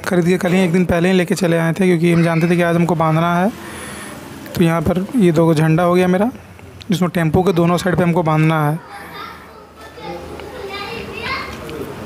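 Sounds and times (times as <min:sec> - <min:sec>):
children chattering: 0:00.0 - 0:06.3, 0:06.9 - 0:12.0.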